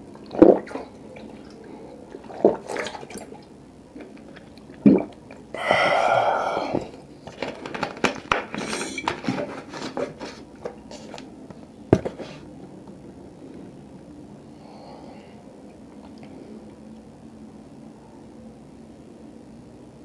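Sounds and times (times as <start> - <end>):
person gulping water: 0.1 - 7.1
breathy exhale: 5.6 - 6.9, 14.5 - 15.5
plastic bottle crinkling: 6.7 - 11.3.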